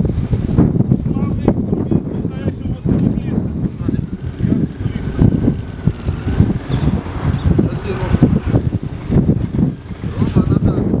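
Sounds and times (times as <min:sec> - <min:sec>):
wind buffeting microphone: 0:00.0 - 0:11.0
motorcycle engine pulsing rumble: 0:00.1 - 0:11.0.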